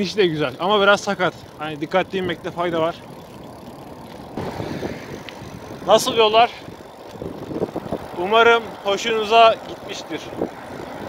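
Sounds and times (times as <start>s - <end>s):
bicycle tyres on asphalt: 0.0s - 11.0s
wind rushing over microphone: 4.3s - 8.9s, 10.0s - 11.0s.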